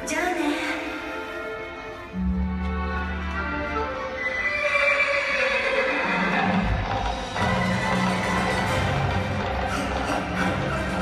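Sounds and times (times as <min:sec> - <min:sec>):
music over arena loudspeakers: 0:06.1 - 0:11.0.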